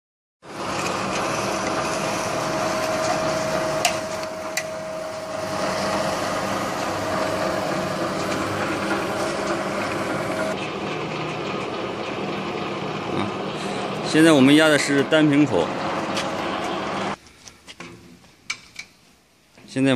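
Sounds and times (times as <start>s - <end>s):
forming machine droning and whining: 0.4s - 17.2s.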